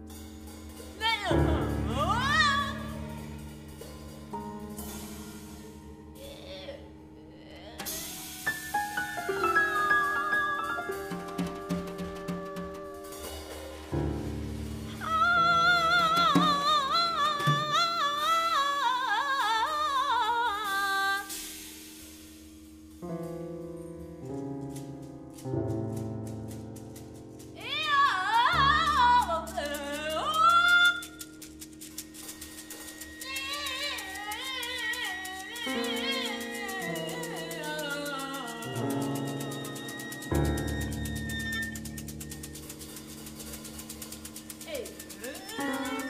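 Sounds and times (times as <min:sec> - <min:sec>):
grand piano: 0:00.0 - 0:46.0
high wordless vocal: 0:06.2 - 0:08.3, 0:15.0 - 0:21.3
light clicking percussion: 0:07.8 - 0:14.4, 0:23.0 - 0:46.0
violin: 0:09.2 - 0:18.4, 0:32.7 - 0:43.6, 0:44.6 - 0:46.0.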